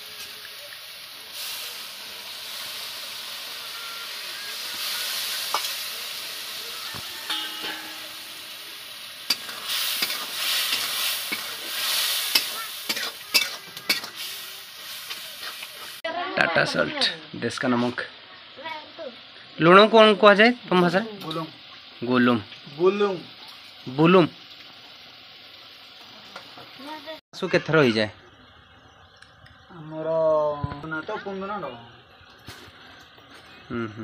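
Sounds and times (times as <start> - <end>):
paste sizzling in oil: 0.0 - 33.8
metal ladle scraping a pan: 7.0 - 15.9.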